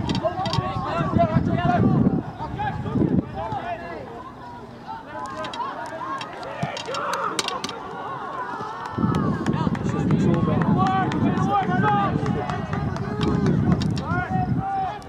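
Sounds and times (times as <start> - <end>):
distant shouts and calls: 0.1 - 15.0.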